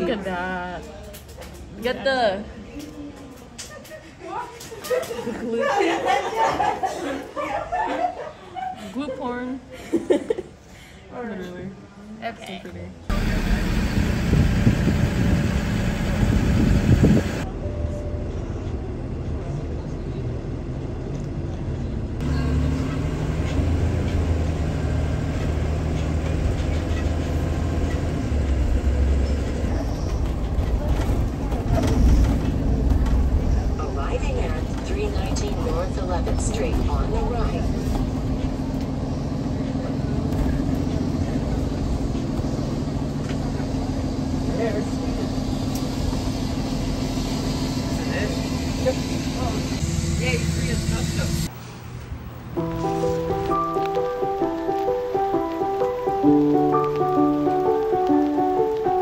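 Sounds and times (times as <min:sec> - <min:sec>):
city street noise: 0:00.0 - 0:59.0
bus engine rumbling: 0:13.0 - 0:59.0.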